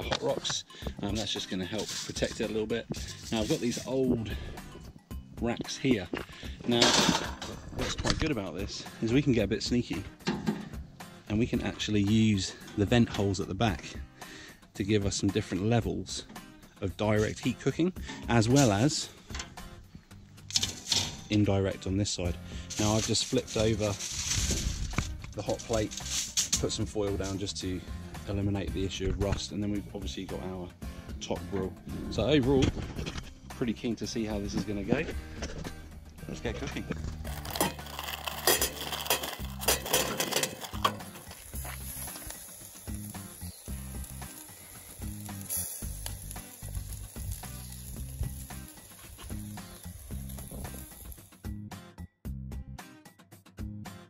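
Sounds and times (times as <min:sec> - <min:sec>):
background music: 0:00.0 - 0:54.0
aluminium foil rustling: 0:01.1 - 0:04.0, 0:22.6 - 0:27.5, 0:36.5 - 0:51.4
wire grill rack clicking: 0:20.5 - 0:21.4, 0:37.2 - 0:51.2
short hiss: 0:41.1 - 0:51.4.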